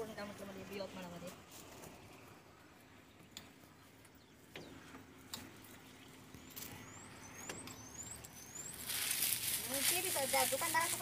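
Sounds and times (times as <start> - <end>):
bird whistling high calls: 6.7 - 9.6.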